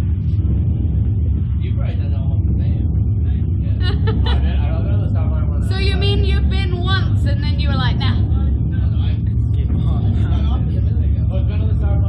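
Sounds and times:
steady low rumble: 0.0 - 12.0
two people talking: 0.6 - 12.0.

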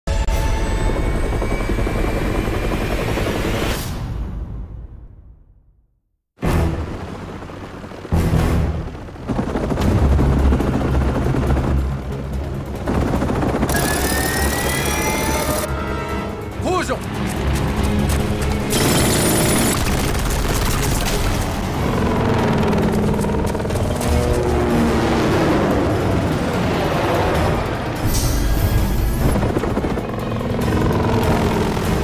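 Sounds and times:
helicopter rotor and engine: 0.1 - 3.9, 6.5 - 32.0
rotary minigun firing: 13.6 - 15.6.

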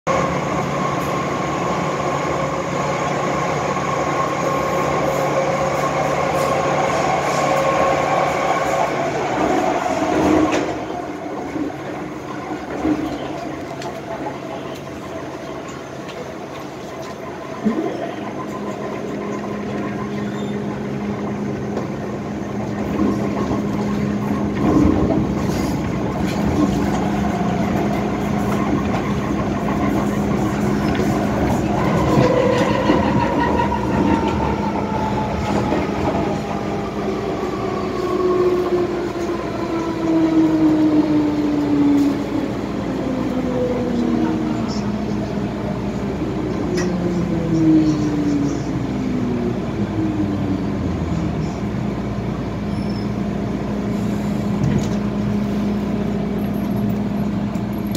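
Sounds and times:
rail running noise: 0.1 - 57.9
train interior hum: 0.1 - 57.9.

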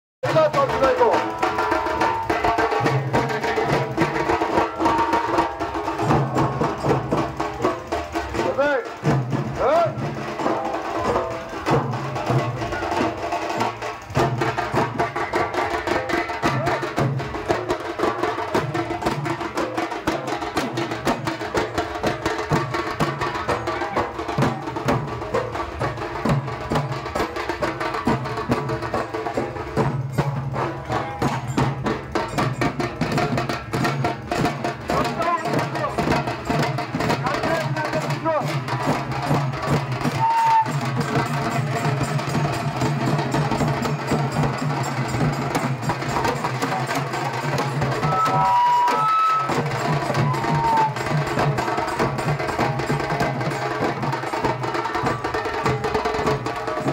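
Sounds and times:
group of drummers drumming: 0.2 - 56.9.

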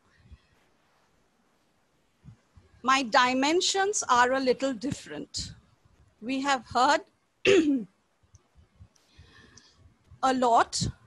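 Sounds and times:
woman clearing her throat: 7.5 - 7.9.

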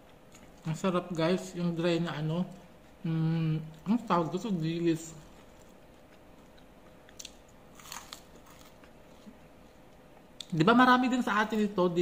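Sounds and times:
crunchy fried fish being chewed: 2.2 - 10.6.

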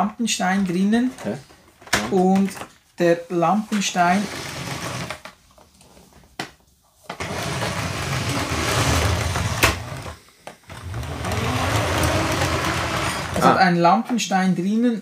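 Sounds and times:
toy train motor whirring: 7.2 - 13.6.

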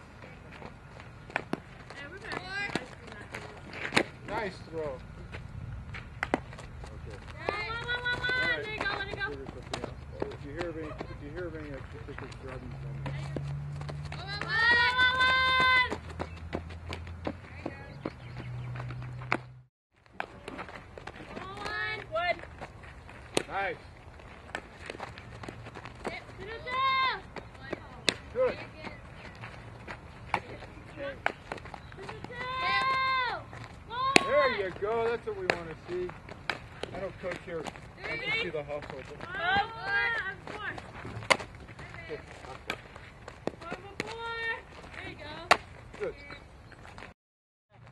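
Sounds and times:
ball knocking off bat and glove: 41.0 - 41.6.

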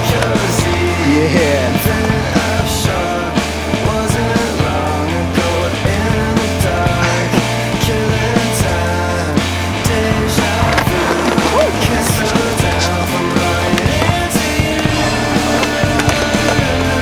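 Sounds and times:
grunge rock music: 0.0 - 17.0
skateboard wheels rolling on concrete: 0.0 - 17.0.

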